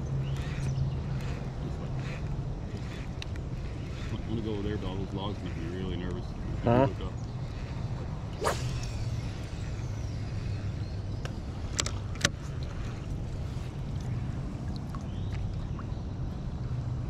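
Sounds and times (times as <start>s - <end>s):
fishing rod swish: 8.3s - 10.1s.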